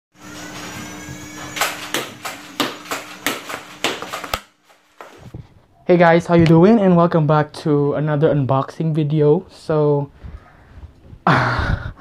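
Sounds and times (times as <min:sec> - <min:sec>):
blaster motor whine: 0:00.2 - 0:03.8.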